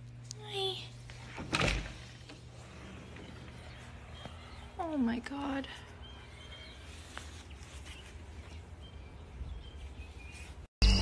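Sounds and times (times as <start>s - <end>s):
faint background hum: 0.0s - 10.7s.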